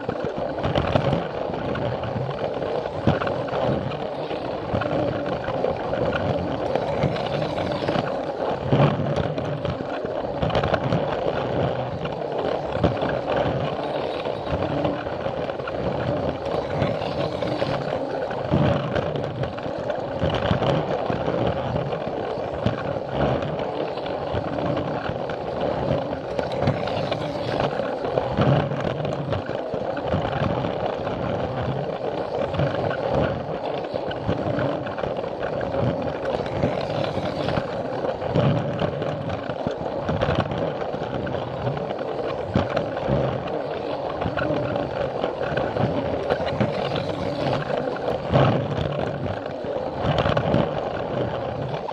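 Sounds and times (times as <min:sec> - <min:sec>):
wheels rattling on plastic track: 0:00.0 - 0:51.9
toy train motor whirring: 0:06.6 - 0:08.5, 0:16.4 - 0:18.4, 0:26.2 - 0:28.1, 0:36.2 - 0:38.3, 0:45.2 - 0:48.1.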